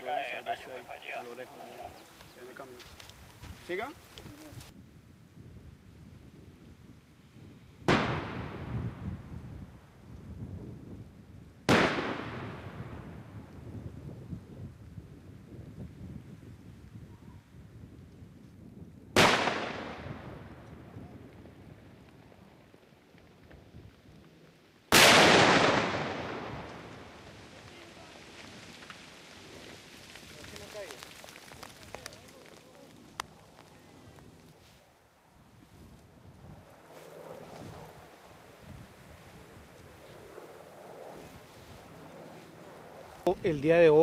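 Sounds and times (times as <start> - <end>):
explosive blasts with rumble: 24.9 - 27.2.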